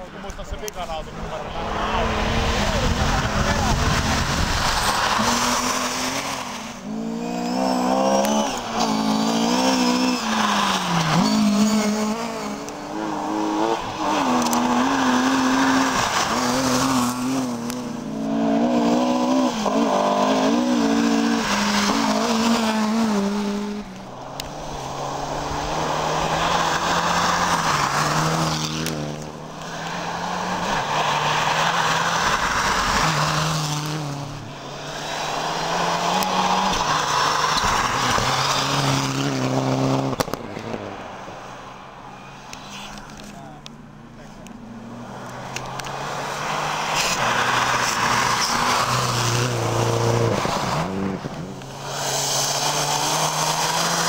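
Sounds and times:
rally car engines at full throttle: 0:00.0 - 0:54.0
car passing by: 0:00.1 - 0:43.6, 0:44.6 - 0:54.0.

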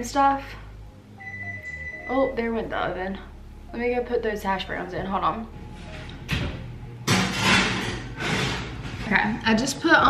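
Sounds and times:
metal tray scraping into oven: 0:05.6 - 0:10.0.

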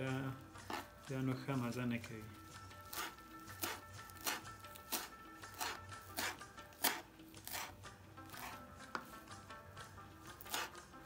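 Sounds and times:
knife chopping on wooden board: 0:00.6 - 0:01.0, 0:02.7 - 0:09.3, 0:10.3 - 0:10.8.

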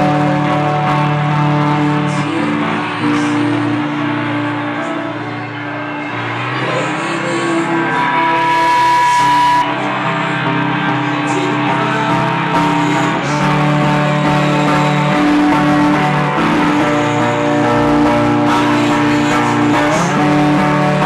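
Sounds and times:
ringing guitar chords: 0:00.0 - 0:21.0
rock band playing: 0:00.0 - 0:21.0.

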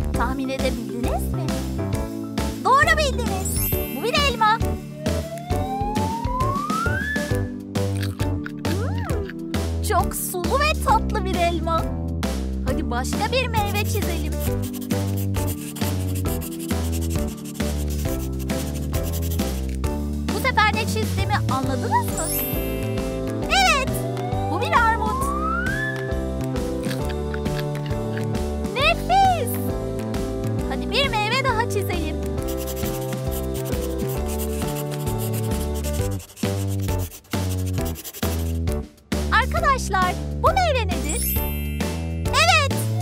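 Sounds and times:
children's background music: 0:00.0 - 0:43.0
pencil scribbling: 0:13.4 - 0:19.9, 0:32.4 - 0:38.8
short warbling high sound: 0:23.5 - 0:26.1.

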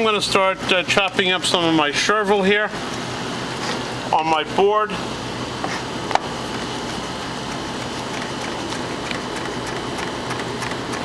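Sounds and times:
background hum and rush: 0:00.0 - 0:11.0.

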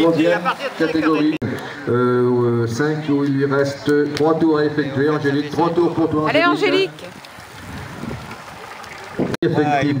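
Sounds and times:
wind noise on microphone: 0:05.8 - 0:10.0.

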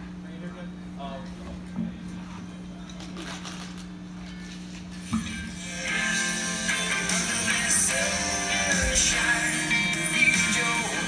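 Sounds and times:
steady low hum: 0:00.0 - 0:11.0
rock band with electric guitars: 0:05.6 - 0:11.0.

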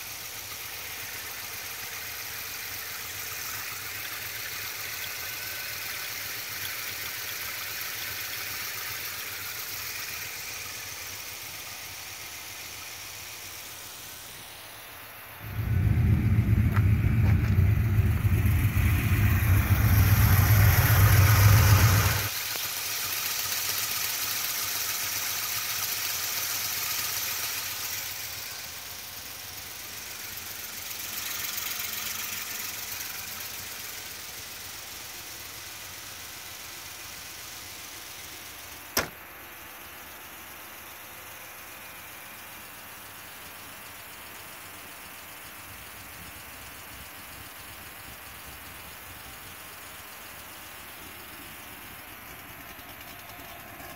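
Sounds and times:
car engine idling: 0:00.0 - 0:53.9
loud low rumble: 0:15.4 - 0:22.3.

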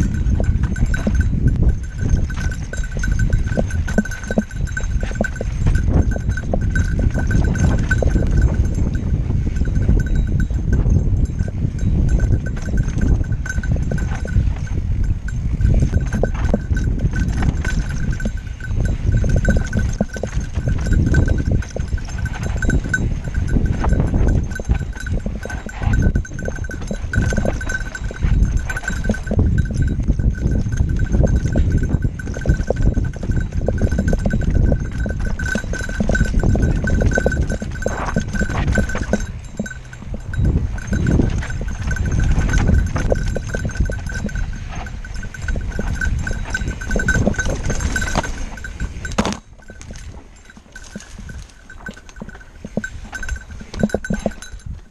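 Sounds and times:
bike rattling over rocks: 0:00.0 - 0:54.9
high ringing tone: 0:00.0 - 0:54.9
wind and tyres rumbling: 0:00.0 - 0:54.9.

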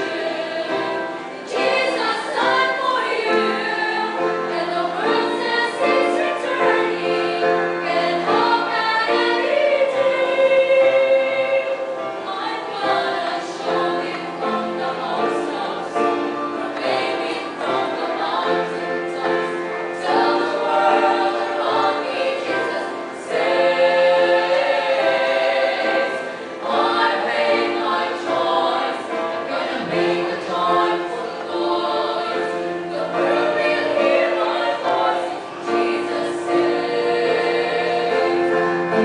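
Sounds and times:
female choir singing gospel: 0:00.0 - 0:39.0.

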